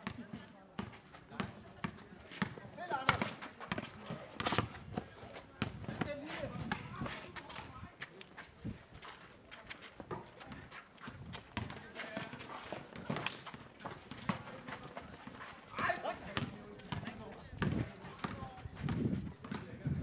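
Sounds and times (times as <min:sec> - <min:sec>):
players' voices: 0:00.0 - 0:20.0
running footsteps on paving: 0:01.9 - 0:20.0
basketball bouncing: 0:16.3 - 0:19.6.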